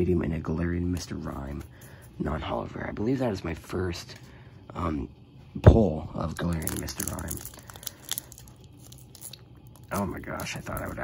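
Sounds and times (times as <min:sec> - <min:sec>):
foil wrapper crinkling: 0:06.3 - 0:11.0.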